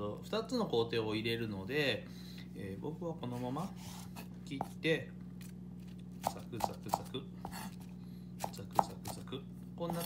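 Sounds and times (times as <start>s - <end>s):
knife chopping on wooden board: 6.2s - 10.0s.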